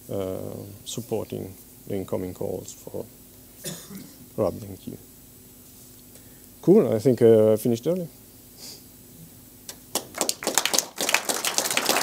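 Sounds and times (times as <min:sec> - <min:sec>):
audience applauding: 0:09.9 - 0:12.0.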